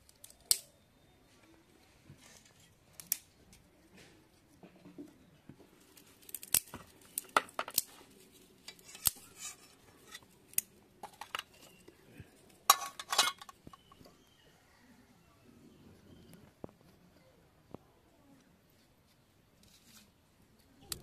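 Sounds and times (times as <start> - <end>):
metal utensils clicking: 12.7 - 13.6.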